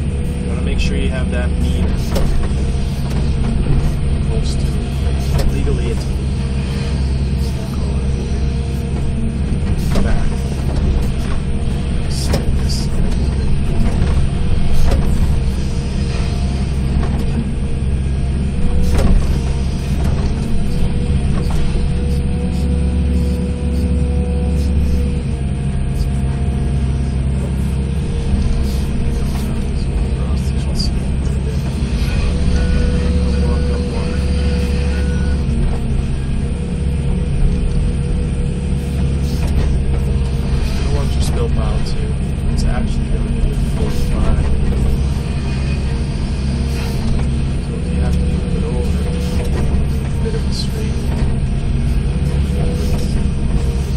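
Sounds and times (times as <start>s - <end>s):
excavator diesel engine running: 0.0s - 53.9s
hydraulic whine: 0.0s - 53.9s.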